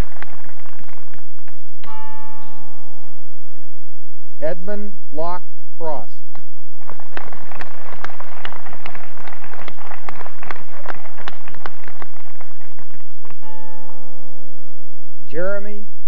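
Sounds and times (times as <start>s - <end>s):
audience clapping: 0.0s - 1.9s, 6.8s - 13.6s
humming tone with overtones: 0.0s - 4.4s, 10.9s - 15.3s.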